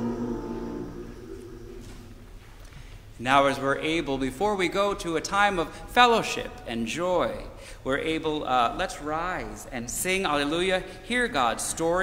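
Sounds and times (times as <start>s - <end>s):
low lingering tone: 0.0s - 2.3s
held hymn chord in church: 0.0s - 2.4s.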